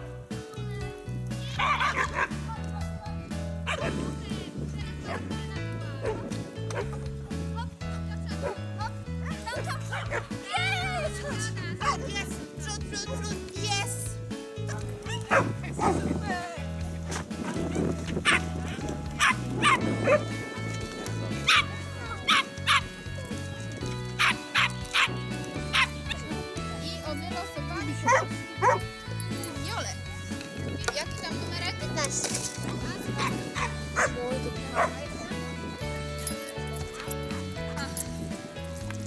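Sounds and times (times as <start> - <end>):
background music with bass line: 0.0 - 39.0
dog barking excitedly: 1.6 - 2.4, 3.7 - 4.0, 9.2 - 10.3, 14.7 - 16.0, 17.1 - 20.2, 22.3 - 22.9, 28.1 - 28.9, 33.6 - 35.0.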